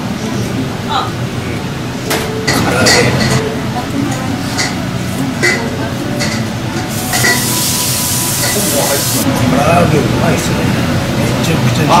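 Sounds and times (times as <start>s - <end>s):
oil frying hiss: 6.9s - 9.3s.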